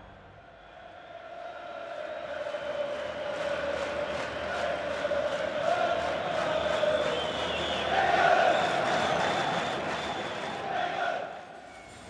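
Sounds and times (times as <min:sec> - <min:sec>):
football crowd chanting: 0:00.4 - 0:11.7.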